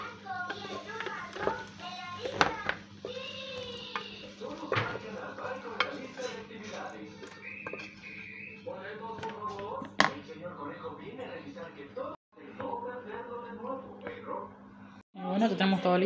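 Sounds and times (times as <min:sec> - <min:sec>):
children talking and singing: 0:00.0 - 0:04.6, 0:07.0 - 0:08.2.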